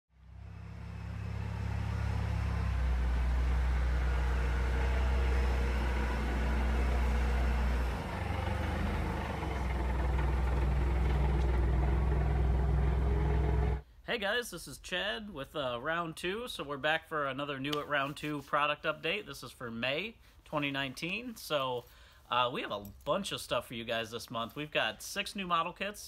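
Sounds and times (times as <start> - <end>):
forklift engine drone: 0.2 - 13.8.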